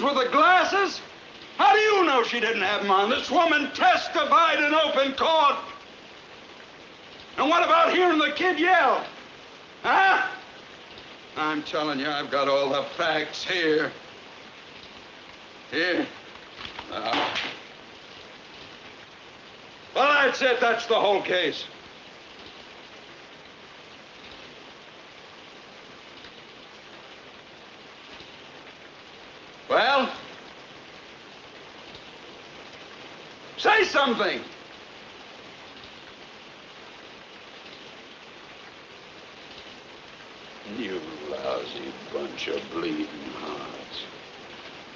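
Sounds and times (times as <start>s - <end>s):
steady hiss: 0.0s - 44.9s.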